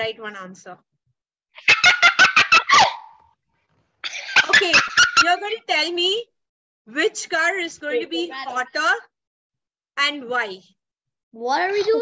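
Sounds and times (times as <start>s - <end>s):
boy laughing loudly: 1.6s - 3.2s.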